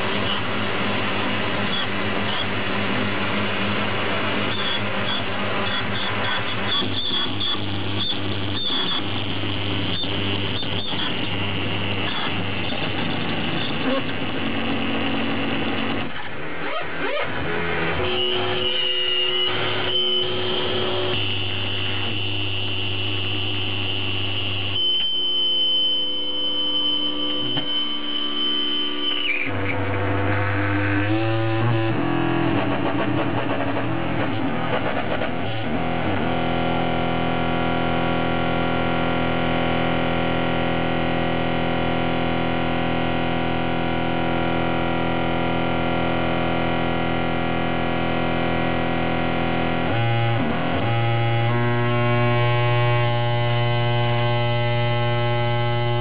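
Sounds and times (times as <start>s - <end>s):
electronic drone music: 0.0s - 56.0s
high steady tone: 17.9s - 33.6s.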